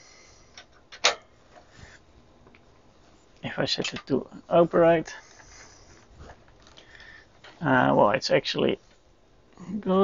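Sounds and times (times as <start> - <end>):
faint handling sounds: 0.0 - 8.0, 8.6 - 9.2.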